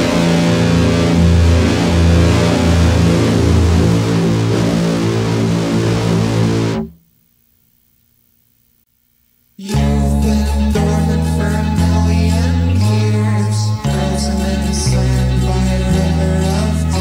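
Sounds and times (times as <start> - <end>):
instrumental music with guitar and bass: 0.0 - 7.0, 9.6 - 17.0.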